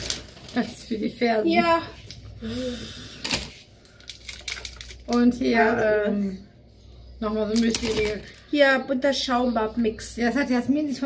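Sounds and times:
packaging clicks and rattles: 0:03.3 - 0:05.2.

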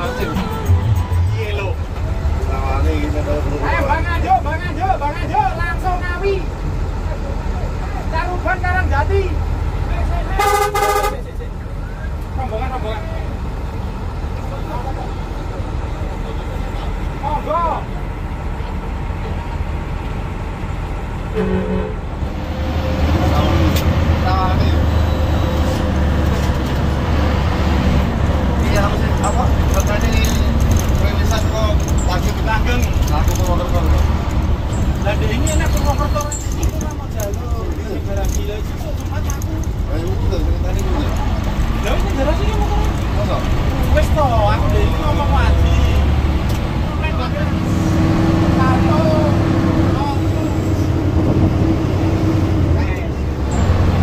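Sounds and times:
bus diesel engine running: 0:00.0 - 0:54.0
multi-tone horn toot: 0:10.4 - 0:11.3.

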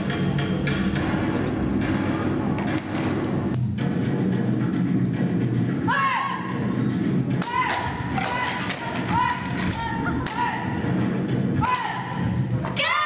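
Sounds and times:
background music: 0:00.0 - 0:13.0
children shouting kiai: 0:12.8 - 0:13.0.

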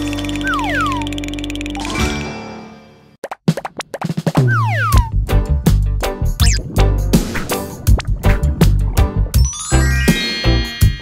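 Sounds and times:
cartoon background music: 0:00.0 - 0:03.1, 0:04.3 - 0:11.0.

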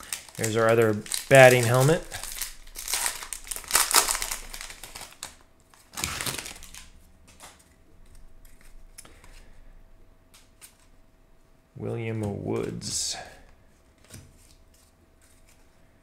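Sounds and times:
foil wrapper crinkling: 0:00.0 - 0:07.7.

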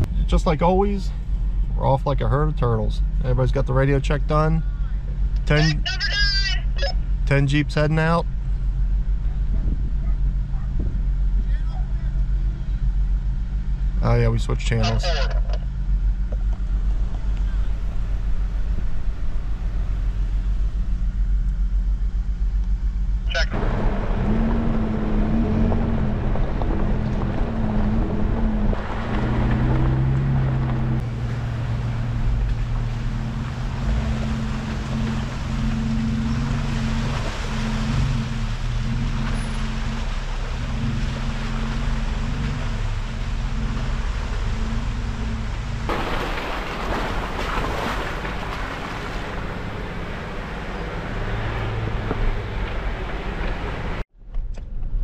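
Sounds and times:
car engine running at low speed: 0:00.0 - 0:55.0.

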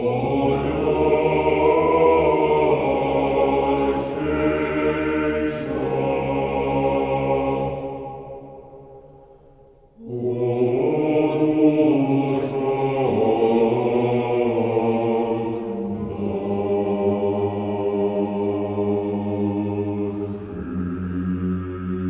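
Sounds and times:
male choir singing a cappella: 0:00.0 - 0:09.0, 0:10.0 - 0:22.0.

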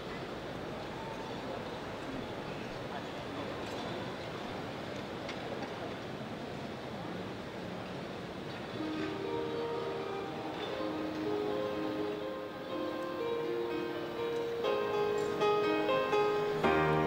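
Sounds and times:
large hall background noise: 0:00.0 - 0:17.0
orchestra playing softly: 0:08.7 - 0:17.0.

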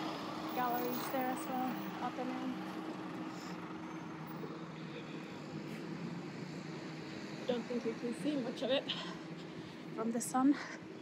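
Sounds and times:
bus engine humming: 0:00.0 - 0:04.4
street traffic: 0:00.0 - 0:11.0.

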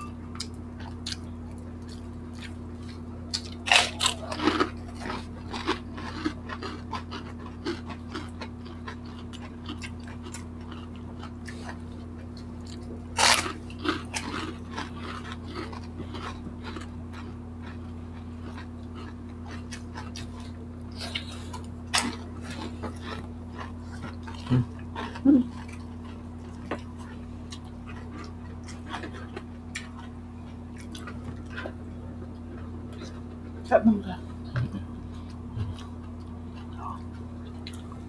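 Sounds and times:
low electrical hum: 0:00.0 - 0:38.0
wet chewing: 0:00.3 - 0:33.6, 0:34.4 - 0:38.0
crunchy bites into fried food: 0:00.5 - 0:26.9.

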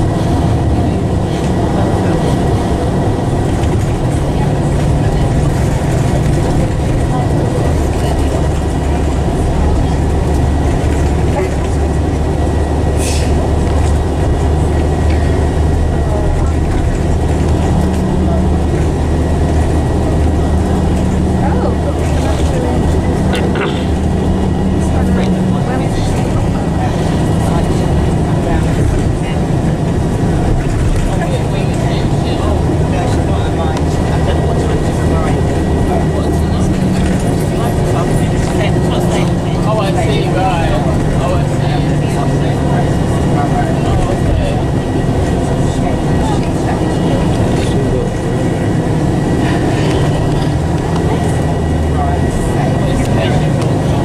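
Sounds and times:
coach engine and road drone: 0:00.0 - 0:54.0
faint background voices: 0:00.0 - 0:54.0.

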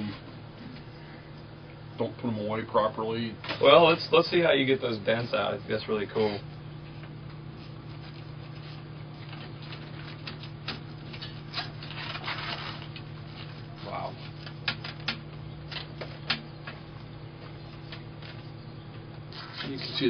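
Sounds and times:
steady low hum: 0:00.0 - 0:20.0
brass scraping against roller: 0:03.5 - 0:06.5, 0:07.6 - 0:15.0, 0:19.3 - 0:20.0.

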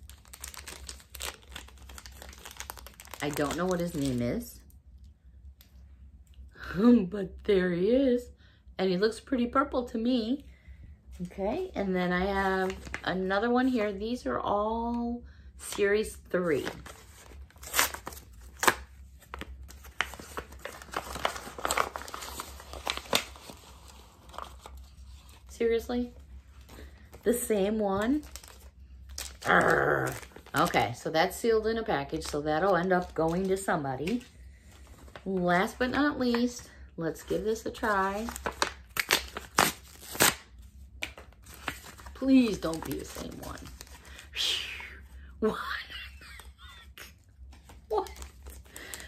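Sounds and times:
cardboard packaging tearing: 0:00.0 - 0:04.0, 0:16.6 - 0:25.5, 0:28.2 - 0:30.8, 0:38.2 - 0:40.5.

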